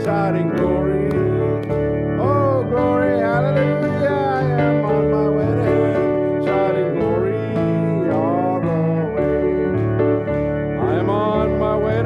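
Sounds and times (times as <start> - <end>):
congregation singing a hymn: 0.0 - 1.6
guitar accompaniment: 0.0 - 12.0.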